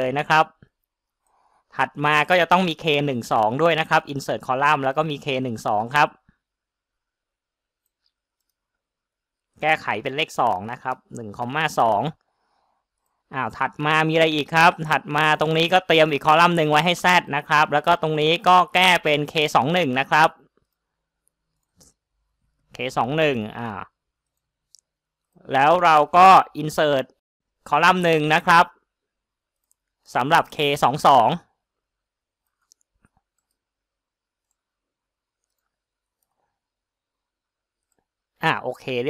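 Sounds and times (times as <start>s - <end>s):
man speaking: 0.0s - 0.6s, 1.7s - 6.2s, 9.6s - 12.2s, 13.3s - 20.4s, 22.7s - 24.0s, 25.4s - 28.8s, 30.1s - 31.6s, 38.4s - 39.0s
faint clicks: 20.4s - 22.8s, 29.5s - 30.2s, 32.4s - 33.7s, 35.3s - 36.5s.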